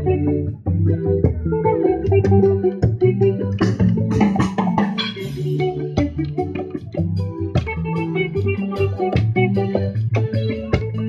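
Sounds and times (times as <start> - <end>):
amplified guitar and bass: 0.0 - 11.0
conga drum strokes: 3.6 - 6.5.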